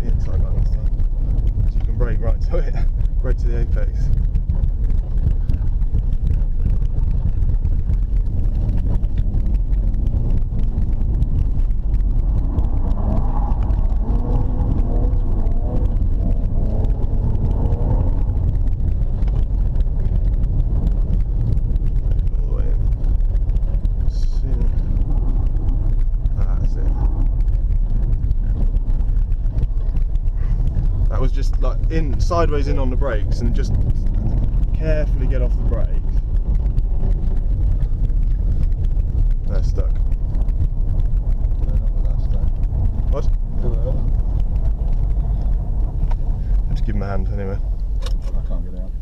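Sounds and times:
car engine and tyres rumbling: 0.0s - 49.0s.

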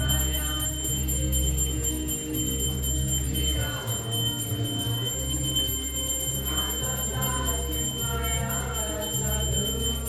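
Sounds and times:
hand cymbals ringing: 0.0s - 10.0s.

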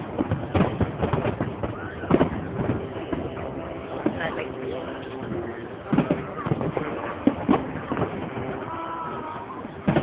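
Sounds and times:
crowd talking: 0.0s - 10.0s
distant fireworks thumps: 0.0s - 10.0s.

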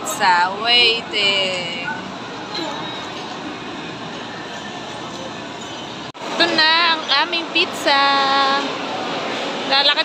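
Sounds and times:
shopping mall background hiss and hum: 0.0s - 10.0s.

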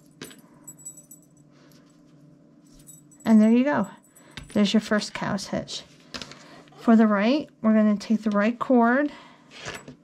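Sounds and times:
metal collar hardware clinking: 0.1s - 1.5s.

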